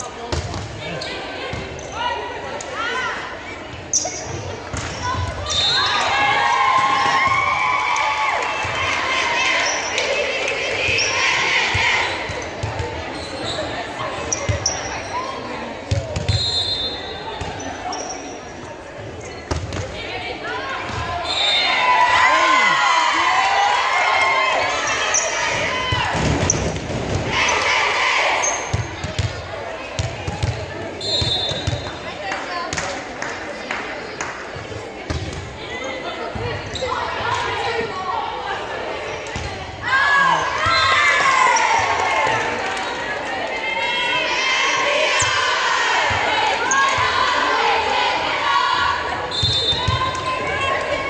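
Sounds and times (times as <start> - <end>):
crowd shouting and cheering: 0.0 - 18.9, 19.5 - 51.0
volleyball hits echoing: 15.8 - 16.4.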